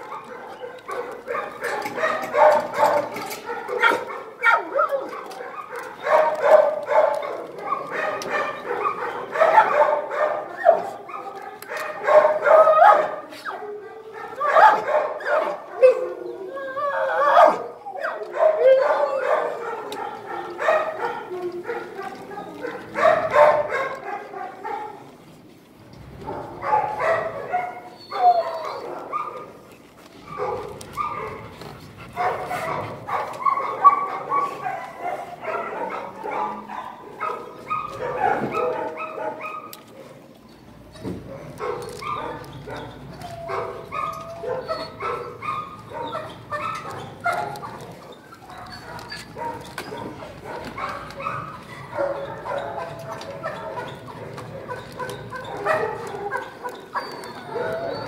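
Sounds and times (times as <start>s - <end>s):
dogs barking and whimpering: 0.0s - 25.2s, 26.1s - 58.0s.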